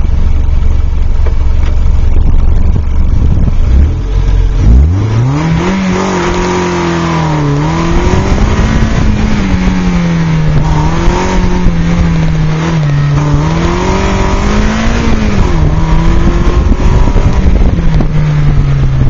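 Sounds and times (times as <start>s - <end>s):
car engine revving hard: 3.2s - 19.0s.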